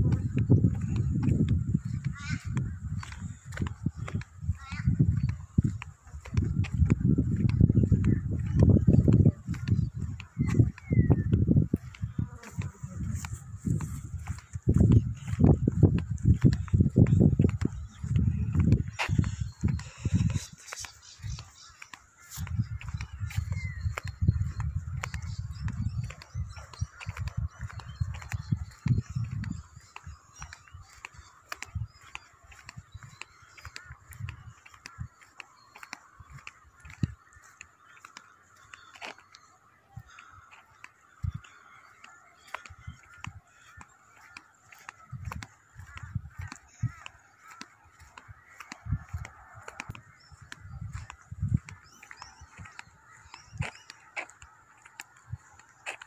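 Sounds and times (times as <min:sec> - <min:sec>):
wind gusts on microphone: 0:00.0 - 0:39.2, 0:39.9 - 0:56.0
birds calling: 0:00.0 - 0:56.0
footsteps: 0:00.0 - 0:56.0.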